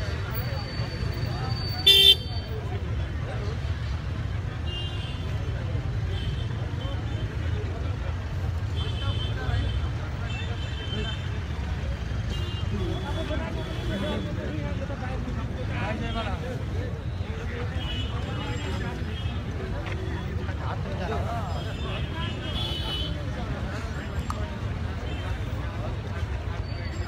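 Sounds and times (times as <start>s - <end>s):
crowd voices: 0.0s - 27.0s
car horn toot: 1.8s - 2.3s.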